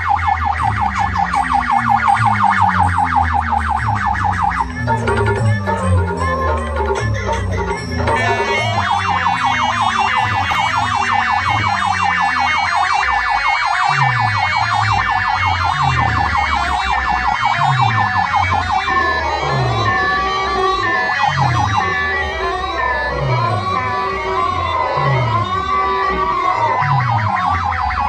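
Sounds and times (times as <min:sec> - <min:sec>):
falling bass notes: 0:00.0 - 0:28.0
rising and falling synth melody: 0:00.0 - 0:28.0
warbling siren-like synth: 0:00.0 - 0:28.0.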